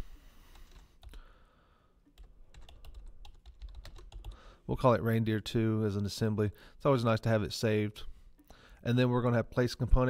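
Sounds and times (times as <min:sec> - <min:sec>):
typing on computer keyboard: 0:02.1 - 0:04.4.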